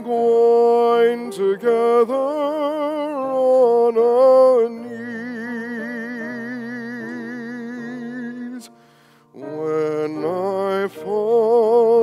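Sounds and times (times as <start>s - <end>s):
person singing with vibrato: 0.0s - 12.0s
piano: 0.0s - 12.0s.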